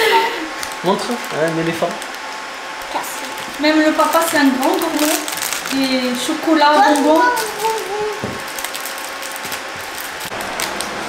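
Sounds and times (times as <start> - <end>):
plastic wrap crinkling: 0.4 - 11.0.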